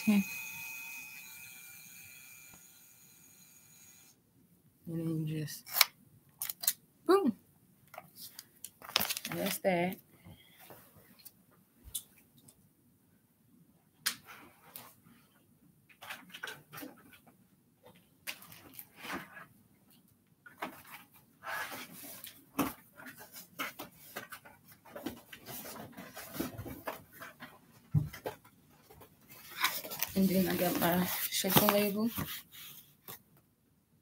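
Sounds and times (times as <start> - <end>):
objects and packaging being handled: 5.6 - 6.8, 7.8 - 10.0, 15.9 - 33.4.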